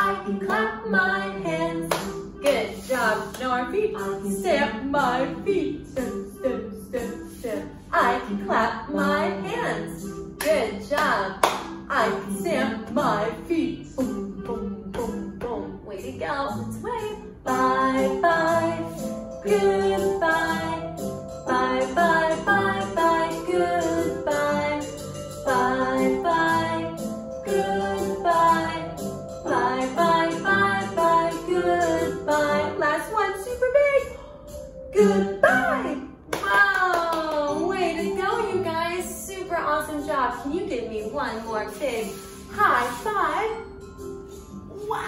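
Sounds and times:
woman singing: 0.0 - 34.3, 35.0 - 43.6
backing music: 0.0 - 45.0
hand claps: 1.9 - 2.6, 10.4 - 11.8, 36.3 - 37.6.

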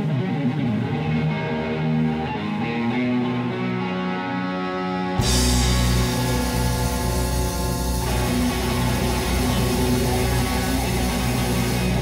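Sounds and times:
bass: 0.0 - 12.0
electric guitar: 0.0 - 12.0
drums: 5.2 - 12.0.

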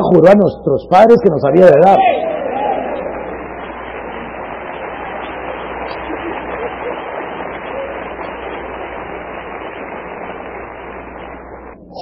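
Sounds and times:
low hum: 2.1 - 12.0
steady hiss: 2.4 - 12.0.

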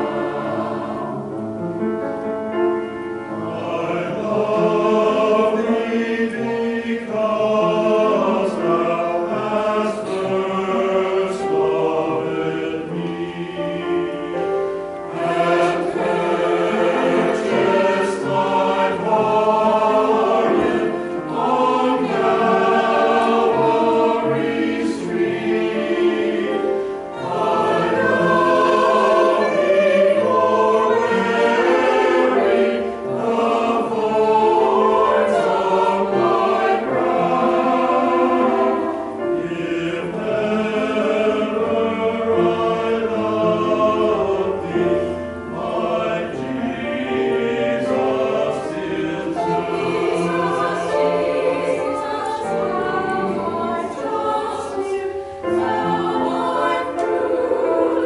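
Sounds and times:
mixed choir singing: 0.0 - 58.0.

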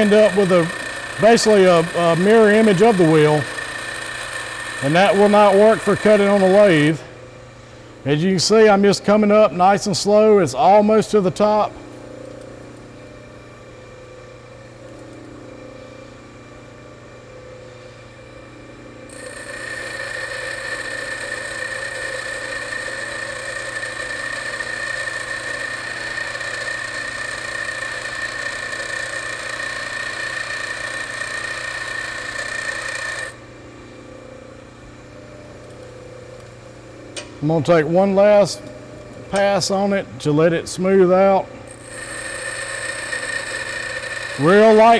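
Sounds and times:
tool bit grinding on wheel: 0.0 - 6.9, 19.1 - 33.4, 41.7 - 44.9
bench grinder motor humming: 0.0 - 7.3, 19.0 - 34.2, 41.5 - 44.9.

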